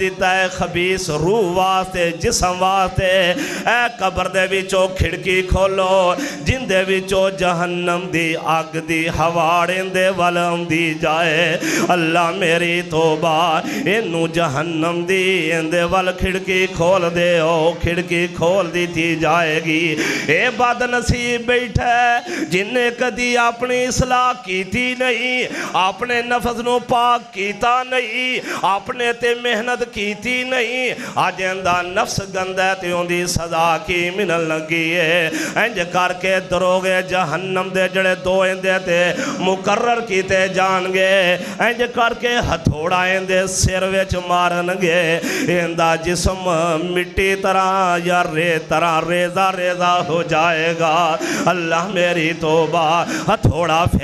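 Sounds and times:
man preaching in chant-like voice: 0:00.0 - 0:54.0.

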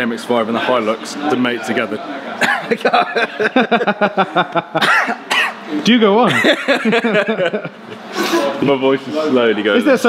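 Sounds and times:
man coughing: 0:02.4 - 0:03.2, 0:04.8 - 0:05.7.

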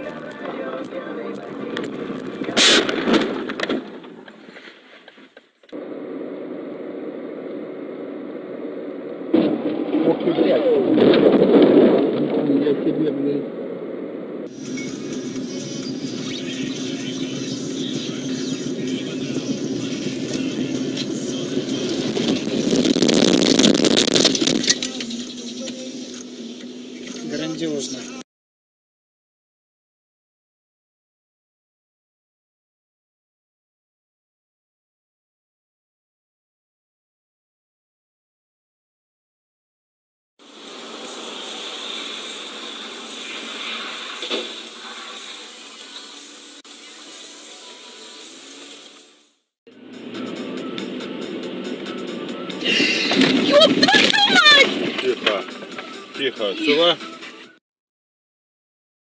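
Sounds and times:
car road and engine noise: 0:00.0 - 0:04.5, 0:05.1 - 0:28.2, 0:40.4 - 0:57.6
tyres hissing on wet road: 0:40.4 - 0:49.3.

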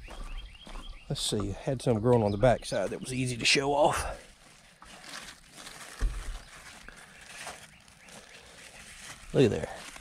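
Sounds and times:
leaves and vines rustling: 0:02.7 - 0:10.0.

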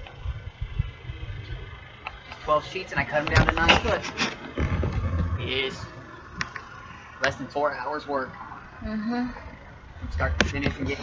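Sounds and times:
wind buffeting microphone: 0:00.0 - 0:02.0, 0:02.9 - 0:06.4, 0:09.4 - 0:11.0.

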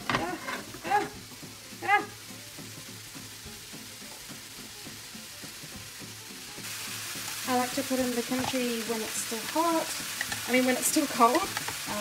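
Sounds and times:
mushrooms sizzling in a frying pan: 0:00.0 - 0:12.0.

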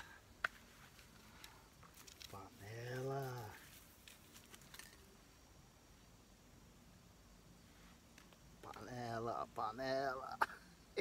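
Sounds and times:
faint scattered clicks: 0:00.0 - 0:05.2, 0:08.0 - 0:09.0.

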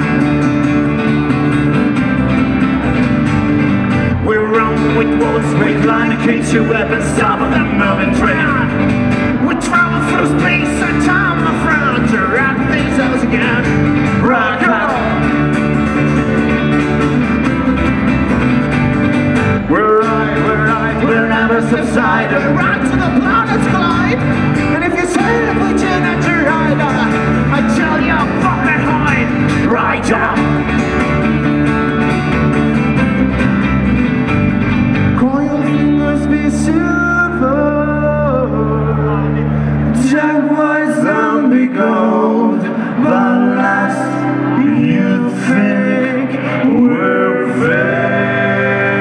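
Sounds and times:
acoustic guitar: 0:00.0 - 0:49.0
electric bass: 0:00.0 - 0:49.0
electric guitar: 0:00.0 - 0:49.0.

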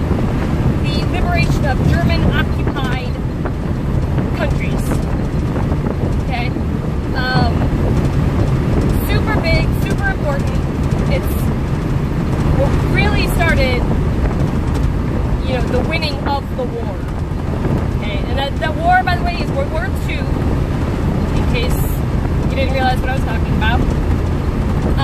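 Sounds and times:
car road and engine rumble: 0:00.0 - 0:25.0
wind buffeting microphone: 0:00.0 - 0:25.0
person talking: 0:07.2 - 0:07.7, 0:12.6 - 0:13.8, 0:15.4 - 0:17.0, 0:18.0 - 0:20.4, 0:21.4 - 0:23.9.

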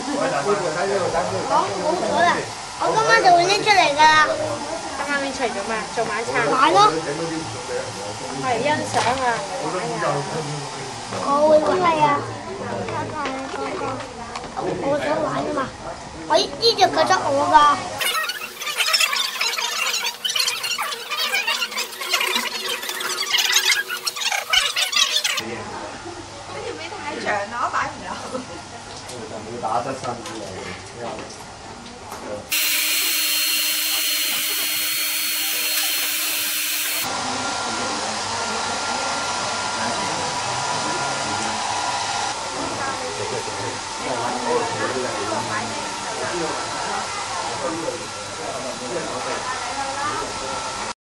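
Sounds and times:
children squealing: 0:18.0 - 0:25.4
hair dryer blowing: 0:32.5 - 0:42.6.

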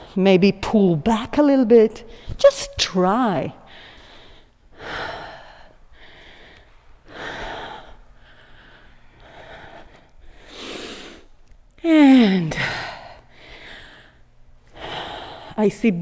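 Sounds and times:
person breathing hard: 0:03.6 - 0:11.4, 0:12.5 - 0:15.6.

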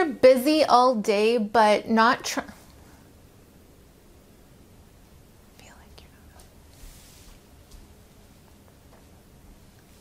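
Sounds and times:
low room hum: 0:00.0 - 0:10.0
woman whispering: 0:05.5 - 0:06.5.

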